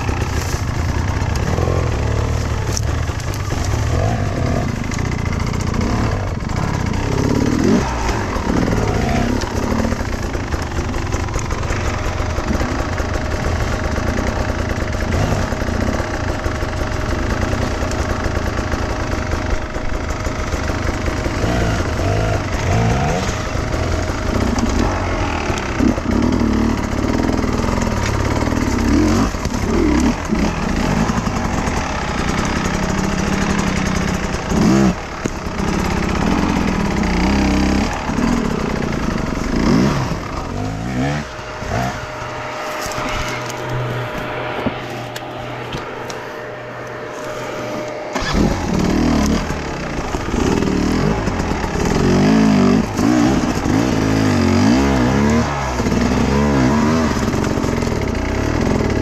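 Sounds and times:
another dirt bike running: 0.0s - 59.0s
motorcycle engine revving: 0.0s - 59.0s.

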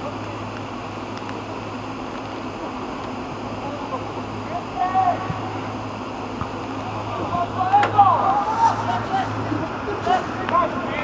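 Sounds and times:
players shouting to one another: 4.5s - 5.7s, 6.8s - 11.0s.

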